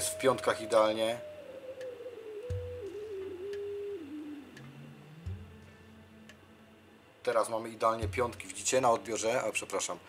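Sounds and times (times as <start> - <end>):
whistle-like radio tone falling: 0.0 - 5.0
low thumps: 2.4 - 3.9, 4.5 - 6.4
faint ticks: 4.5 - 6.4.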